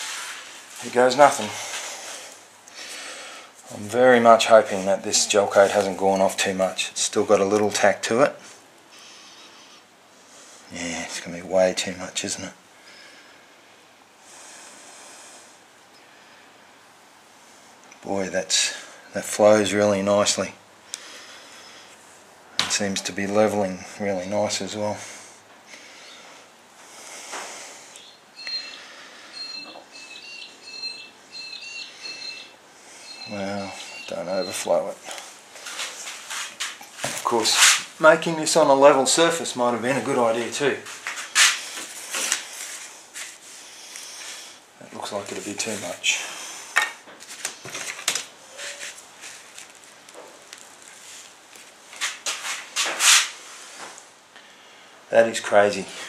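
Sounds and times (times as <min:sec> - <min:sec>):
rustling: 0:00.0 - 0:06.8, 0:32.8 - 0:54.1
soft hiss: 0:00.0 - 0:29.9, 0:30.5 - 0:56.0
small bird chirping: 0:28.0 - 0:34.7.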